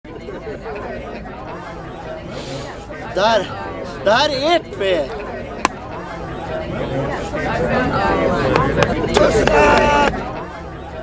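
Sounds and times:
voices chattering: 0.1 - 11.0.

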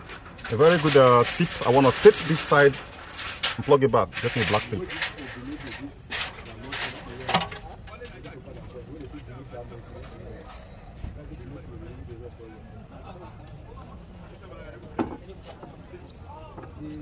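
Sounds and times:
faint voices talking: 0.0 - 17.0.

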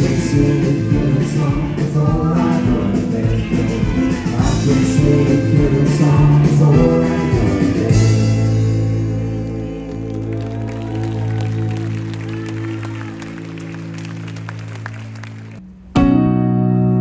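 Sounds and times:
audience clapping: 9.7 - 15.6.

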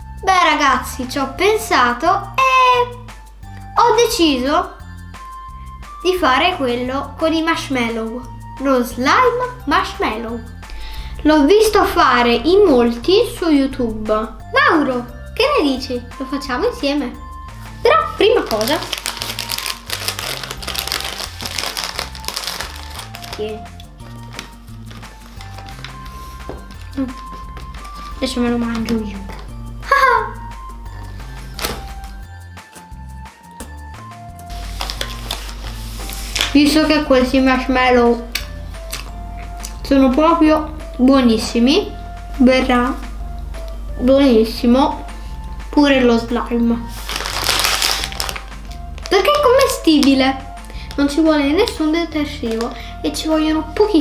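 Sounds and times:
background music with bass: 0.0 - 54.0
plastic bag crinkling: 18.3 - 29.2, 34.5 - 36.6, 46.9 - 52.9.

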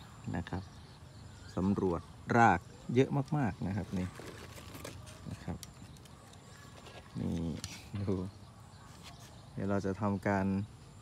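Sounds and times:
light knocks and soil rustles: 3.1 - 9.6.

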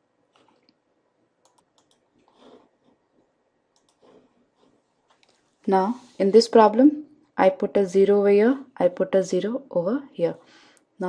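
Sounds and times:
faint clicks: 1.4 - 2.5, 3.7 - 4.1.

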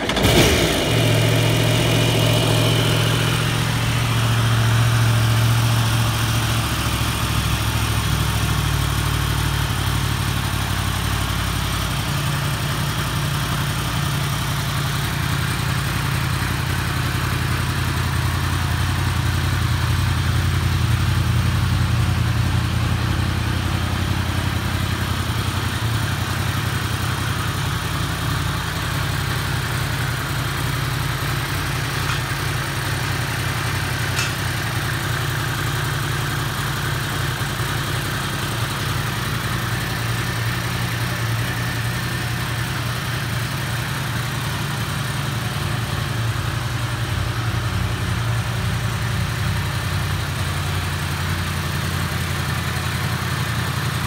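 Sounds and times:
motorcycle engine starting and idling: 0.0 - 54.0.

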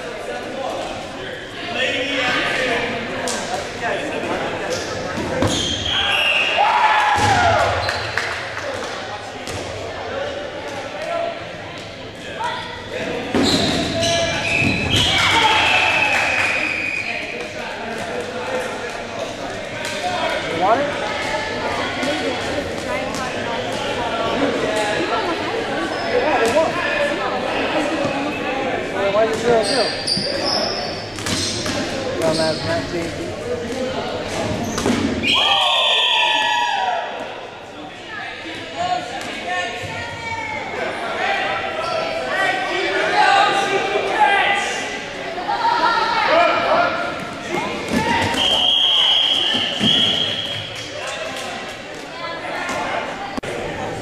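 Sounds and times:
indistinct shouting and chatter: 0.0 - 54.0.

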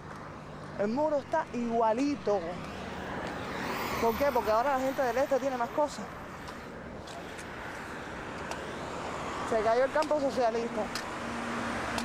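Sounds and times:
road traffic passing cars: 0.0 - 12.0.

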